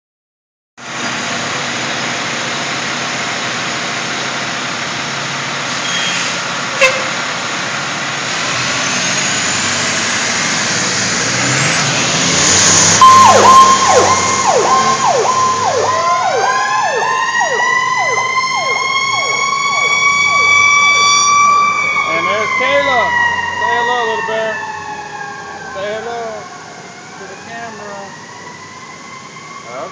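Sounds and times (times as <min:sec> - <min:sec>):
diesel truck engine running: 0:00.8 - 0:21.0
wailing siren rising in pitch: 0:08.9 - 0:29.9
fast yelping siren: 0:13.0 - 0:29.9.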